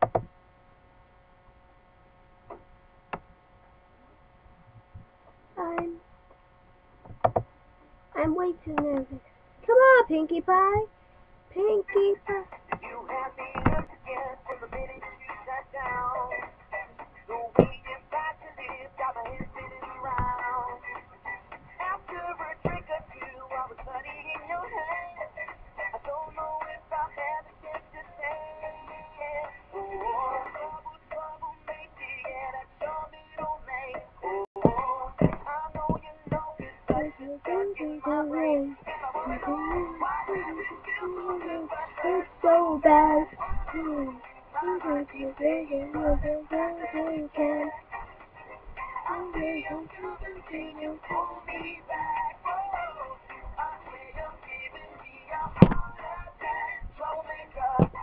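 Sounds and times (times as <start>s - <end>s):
sharp knocks: 7.0s - 7.5s, 55.4s - 55.9s
song with singing voice: 11.6s - 58.0s.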